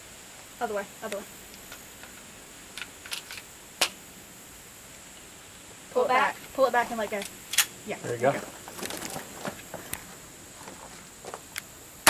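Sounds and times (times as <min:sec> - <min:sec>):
pistol clicks during reload: 0:07.5 - 0:07.7
sharp pistol click: 0:07.5 - 0:07.8.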